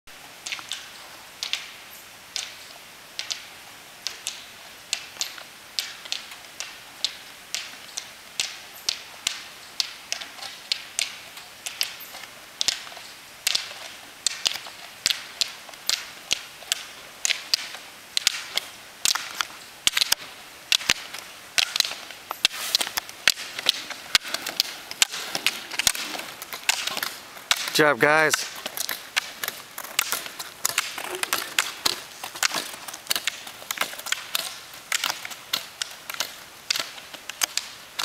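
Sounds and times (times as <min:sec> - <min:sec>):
pole tips clicking on asphalt: 0:00.4 - 0:38.0.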